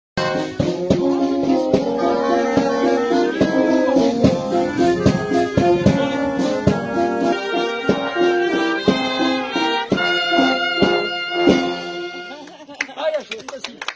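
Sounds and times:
wind band playing a tune: 0.2s - 12.5s.

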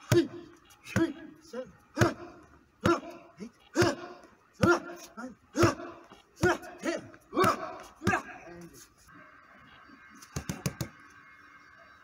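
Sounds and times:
punches hitting strike pad: 0.0s - 1.3s, 2.0s - 3.2s, 3.8s - 8.4s
person shouting: 3.8s - 8.4s.

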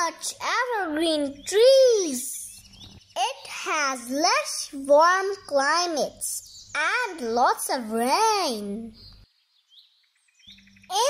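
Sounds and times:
forest ambience: 0.0s - 11.0s
faint bird chirps: 0.3s - 11.0s.

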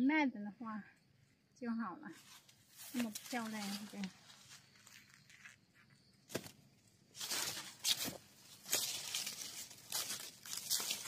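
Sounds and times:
dry cornstalk leaves rustling: 2.1s - 5.6s, 6.3s - 11.0s.

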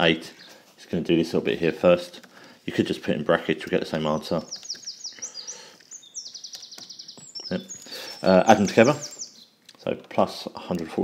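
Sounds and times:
small bird trilling: 4.3s - 9.6s.

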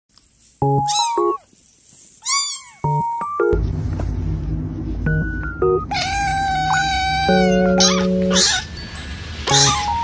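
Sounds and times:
flat musical tones: 0.6s - 1.4s, 2.8s - 10.0s
kitten meowing: 0.8s - 1.4s, 2.2s - 3.0s, 5.9s - 8.7s, 9.5s - 10.0s
bass-heavy music: 2.9s - 8.4s.

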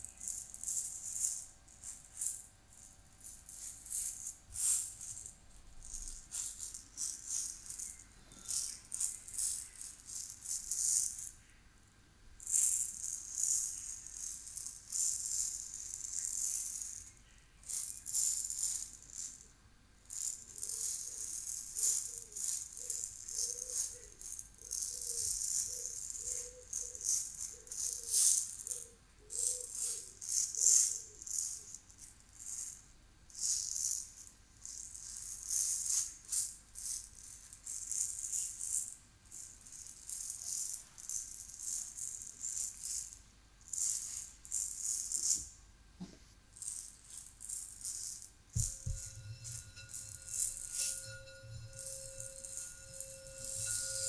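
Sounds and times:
shaker rattle: 0.0s - 11.6s, 12.4s - 45.6s, 46.4s - 54.0s.

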